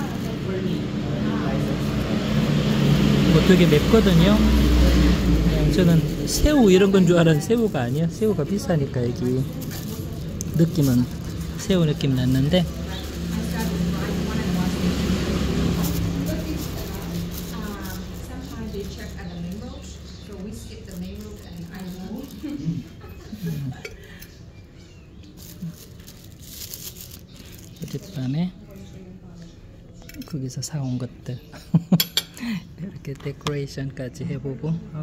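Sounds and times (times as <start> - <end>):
low engine drone: 0.0 - 24.2
faint voices: 0.0 - 31.4.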